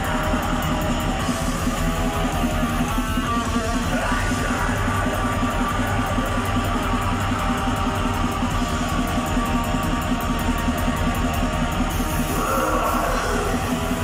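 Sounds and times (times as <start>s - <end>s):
metal band playing live: 0.0s - 14.0s.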